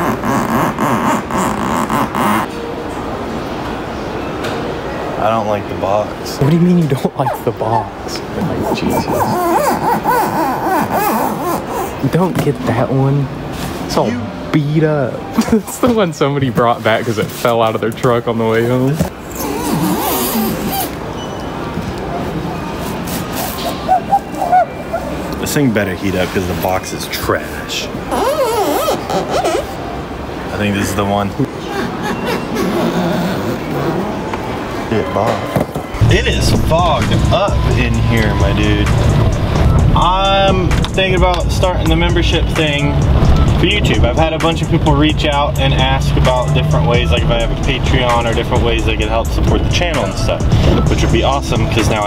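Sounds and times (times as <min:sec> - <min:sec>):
steady background noise: 0:00.0 - 0:52.0
background music with a beat: 0:36.0 - 0:52.0.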